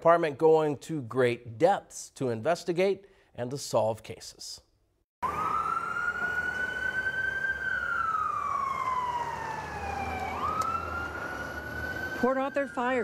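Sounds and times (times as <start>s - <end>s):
fire truck siren wailing: 5.2s - 13.0s.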